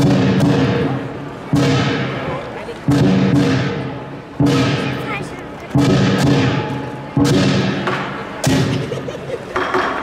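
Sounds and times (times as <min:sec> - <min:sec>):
cymbals crashing: 0:00.0 - 0:02.3, 0:02.9 - 0:05.1, 0:05.8 - 0:08.9
big drum beating: 0:00.0 - 0:09.0.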